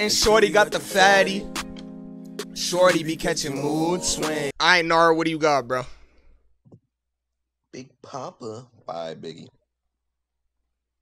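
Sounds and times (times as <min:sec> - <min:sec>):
man speaking: 0:04.4 - 0:06.0, 0:07.8 - 0:09.5.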